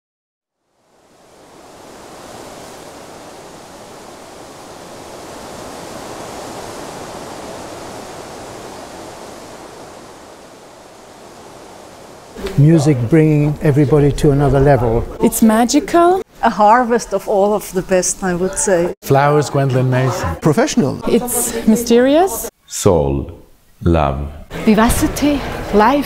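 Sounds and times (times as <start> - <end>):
steady rushing noise: 0.6 - 16.2.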